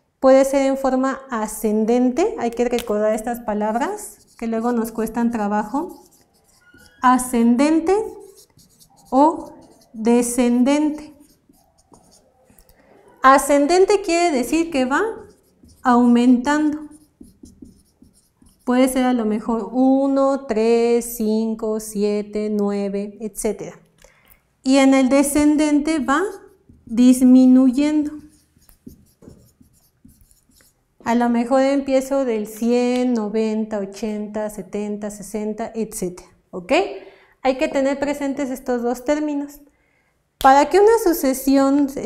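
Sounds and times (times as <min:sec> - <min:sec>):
marker writing on whiteboard: 0:02.5 - 0:19.1, 0:25.3 - 0:30.8.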